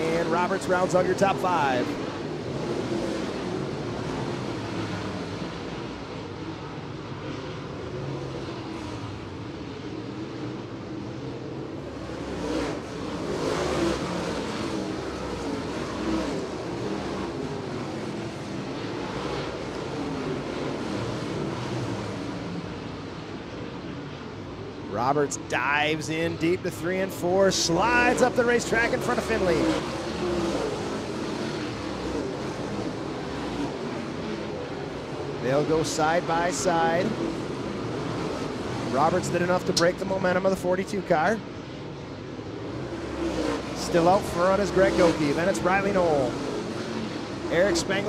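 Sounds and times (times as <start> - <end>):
race car engines on dirt track: 0.0 - 48.0.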